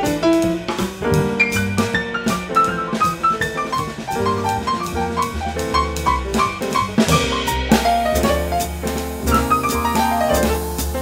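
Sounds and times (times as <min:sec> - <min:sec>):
jazz piano and band: 0:00.0 - 0:11.0.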